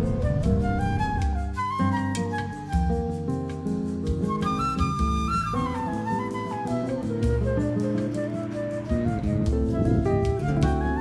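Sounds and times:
background music with light beat: 0.0s - 11.0s.

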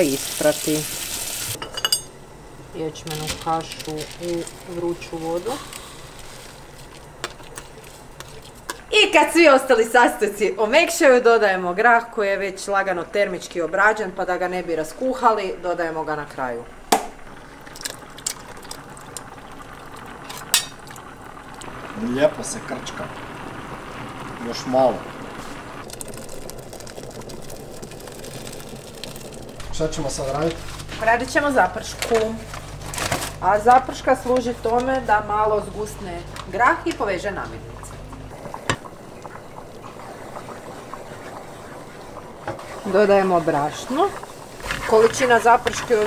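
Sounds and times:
stew bubbling: 2.5s - 11.1s, 11.7s - 46.0s
beans pouring into pot: 25.8s - 31.0s.

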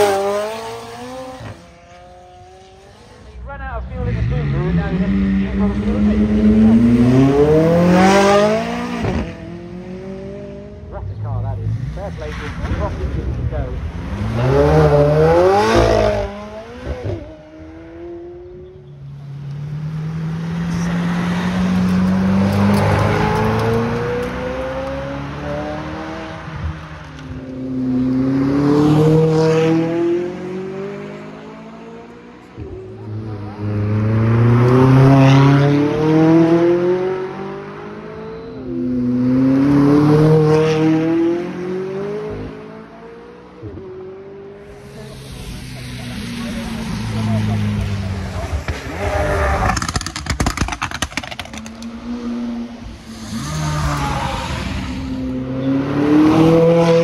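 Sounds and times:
car engines accelerating hard: 0.0s - 57.0s.

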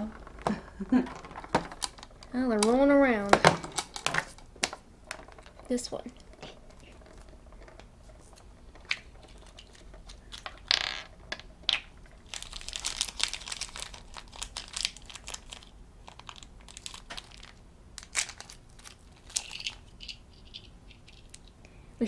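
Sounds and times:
plastic crinkling: 0.0s - 10.7s, 11.3s - 21.5s.

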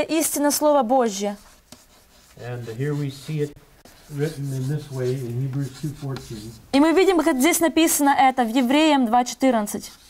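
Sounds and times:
chalk scraping on blackboard: 1.0s - 7.3s, 9.6s - 10.0s
man talking in low voice: 2.4s - 6.6s.

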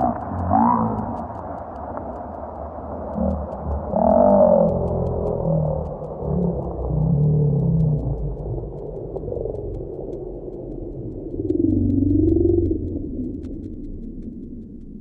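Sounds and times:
wavering pitched tone: 0.0s - 1.4s, 3.2s - 8.8s
low muffled rumbling drone: 0.0s - 15.0s.

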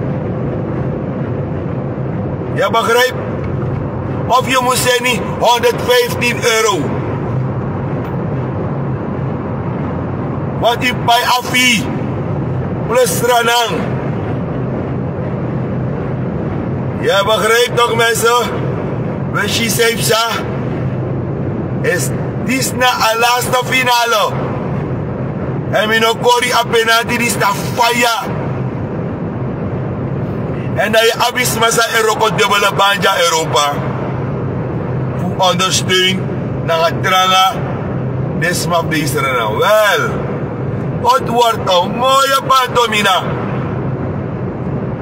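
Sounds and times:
car cabin engine and road drone: 0.0s - 45.0s
man talking: 2.5s - 3.2s, 4.3s - 7.0s, 10.6s - 12.0s, 12.9s - 14.0s, 17.0s - 18.7s, 19.3s - 20.5s, 21.8s - 24.4s, 25.7s - 28.4s, 30.6s - 34.0s, 35.2s - 37.7s, 38.4s - 40.3s, 41.0s - 43.4s.

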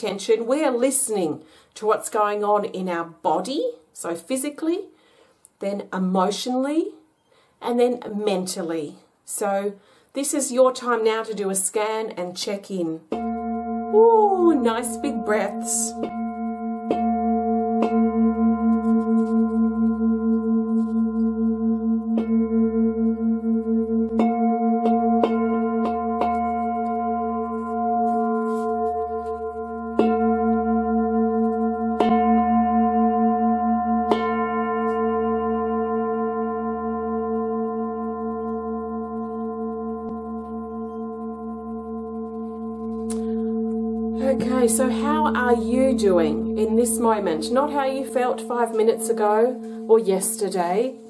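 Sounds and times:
singing bowl strikes: 13.1s - 50.9s
singing bowl ringing: 13.1s - 51.0s.

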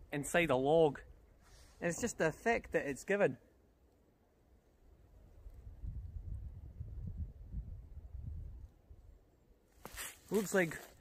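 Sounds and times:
wind buffeting microphone: 5.3s - 9.1s.

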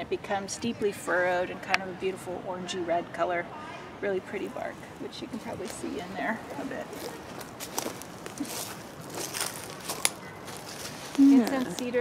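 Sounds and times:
footsteps on dry leaves: 5.5s - 12.0s.

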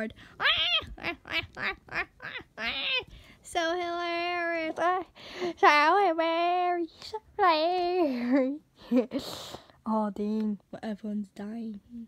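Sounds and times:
child giggling: 0.4s - 3.1s.

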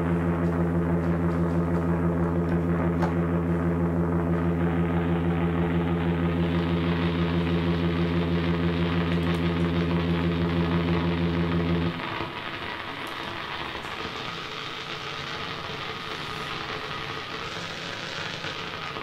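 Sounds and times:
hissing crackling noise texture: 0.0s - 19.0s
synthesizer low drone: 0.0s - 19.0s.

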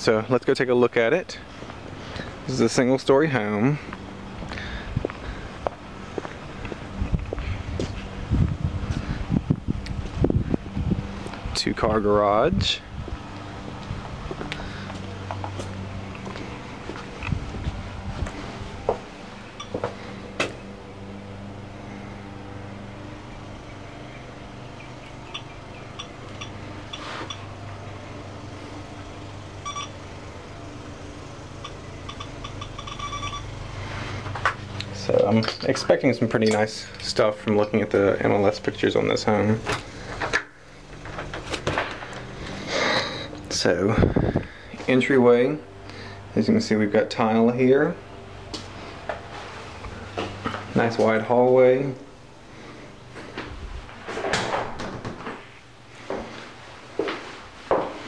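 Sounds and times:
faint steady hum: 0.0s - 58.0s
footsteps on concrete: 1.6s - 2.0s, 3.8s - 9.1s, 13.0s - 20.6s, 56.0s - 58.0s
short electronic beeps: 29.6s - 30.0s, 31.6s - 33.5s.

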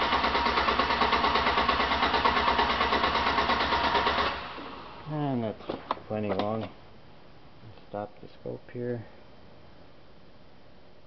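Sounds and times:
starter motor cranking engine: 0.0s - 4.8s.

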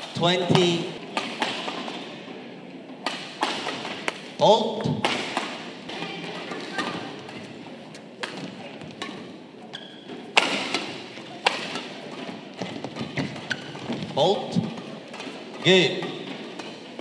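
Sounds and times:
badminton rackets hitting shuttlecock: 0.5s - 2.4s, 3.0s - 17.0s.

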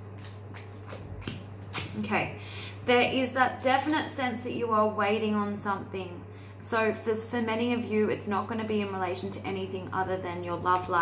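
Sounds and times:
woman speaking: 1.9s - 11.0s.

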